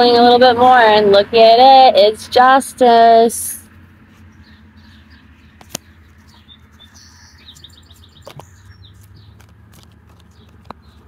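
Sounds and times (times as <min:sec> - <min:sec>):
small birds chirping: 0:03.6 - 0:11.0.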